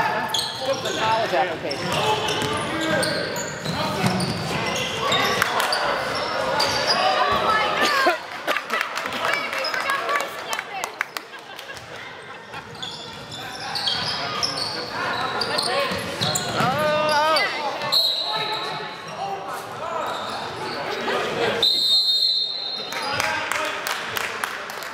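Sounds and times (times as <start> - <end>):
referee's whistle blast: 21.6 - 22.9.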